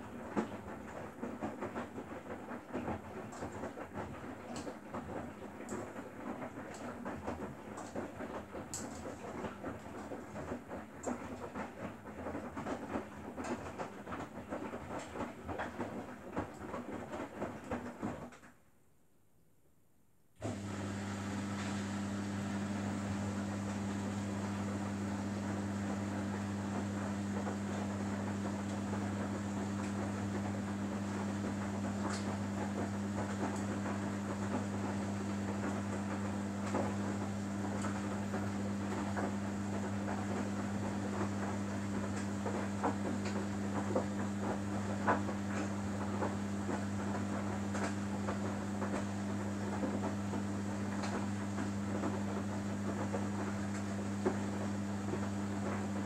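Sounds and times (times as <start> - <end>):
washing machine humming: 0.0 - 18.4, 20.4 - 56.0.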